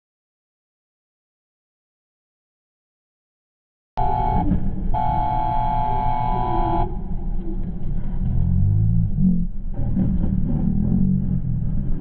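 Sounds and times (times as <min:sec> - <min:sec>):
vehicle horn honking: 0:04.0 - 0:07.2
road noise: 0:04.0 - 0:12.0.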